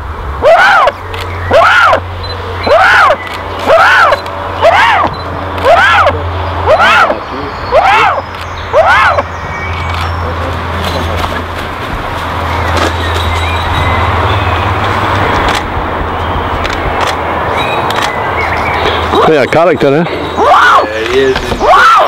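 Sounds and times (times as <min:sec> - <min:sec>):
eagle calling: 0:00.4 - 0:10.4.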